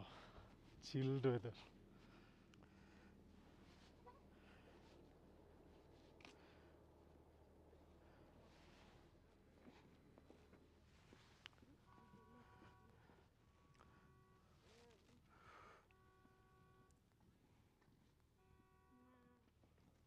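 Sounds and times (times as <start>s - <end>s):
faint steady tones: 0.0s - 20.0s.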